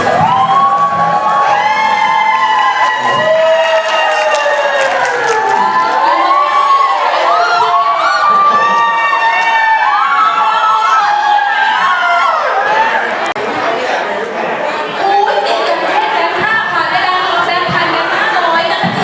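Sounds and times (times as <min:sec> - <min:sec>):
audience cheering and clapping: 0:00.0 - 0:13.5.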